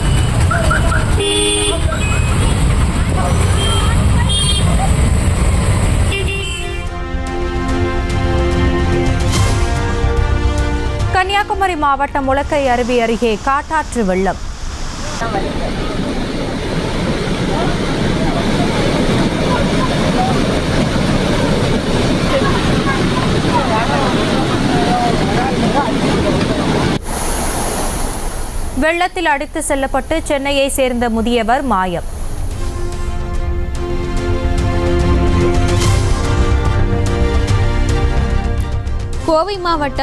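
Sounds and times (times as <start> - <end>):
vehicle horn honking: 0.0 - 2.7, 3.3 - 4.9, 6.1 - 7.2
traffic engines rumbling: 0.0 - 40.0
floodwater rushing: 14.4 - 31.3.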